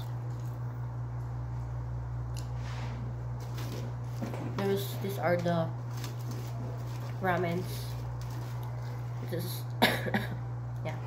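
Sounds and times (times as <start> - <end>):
steady low hum: 0.0 - 11.0
rustles of food being handled: 2.6 - 9.5.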